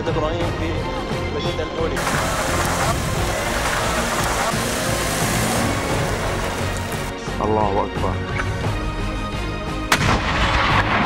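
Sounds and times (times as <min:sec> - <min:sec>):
mortar firing: 0:02.0 - 0:07.1.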